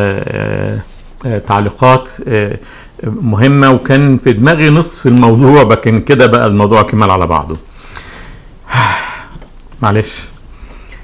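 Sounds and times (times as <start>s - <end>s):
man speaking: 0.0s - 7.7s, 9.7s - 10.4s
man's breathy vocal burst: 7.7s - 9.4s.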